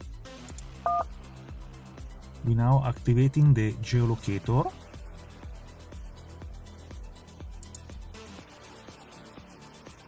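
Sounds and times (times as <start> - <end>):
background music: 0.0 - 10.0
telephone keypad tone: 0.9 - 1.1.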